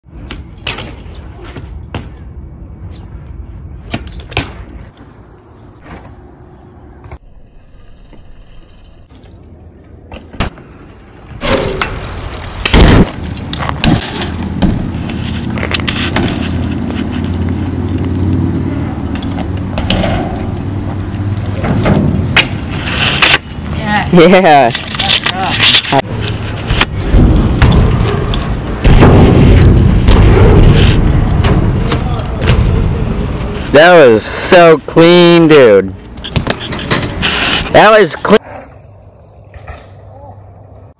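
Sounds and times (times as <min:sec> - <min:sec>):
bicycle tyres rolling on concrete: 0:00.0 - 0:40.9
bike clicks and clatter: 0:00.1 - 0:06.4, 0:07.9 - 0:34.6, 0:35.9 - 0:40.9
bike landing thump: 0:00.3 - 0:02.3, 0:03.8 - 0:05.0, 0:10.1 - 0:10.6, 0:11.4 - 0:15.0, 0:15.8 - 0:16.6, 0:21.6 - 0:23.3, 0:28.8 - 0:32.9.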